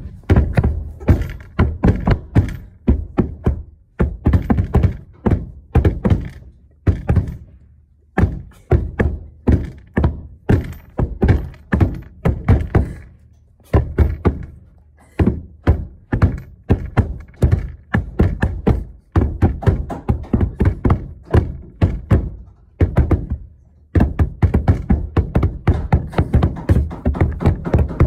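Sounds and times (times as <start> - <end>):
thunks on wooden bed frame: 0.0 - 7.5, 8.2 - 13.1, 13.7 - 28.0.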